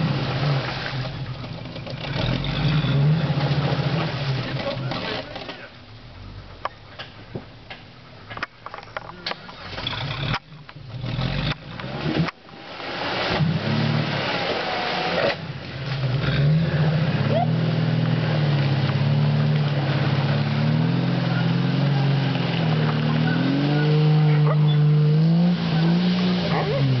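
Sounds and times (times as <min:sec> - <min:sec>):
engine revving under load: 0:09.7 - 0:27.0.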